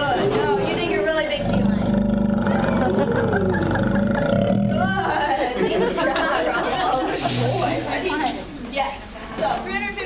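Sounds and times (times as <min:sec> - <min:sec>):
people chattering: 0:00.0 - 0:10.0
sea lion growling call: 0:01.4 - 0:05.0.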